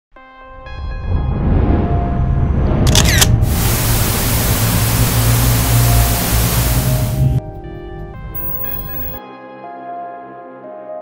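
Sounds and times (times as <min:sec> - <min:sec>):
deep rumble: 0:00.8 - 0:09.2
camera shutter click: 0:02.9 - 0:03.4
loud static hiss: 0:03.4 - 0:07.4, 0:08.4 - 0:09.2
held synth tones: 0:03.5 - 0:09.2.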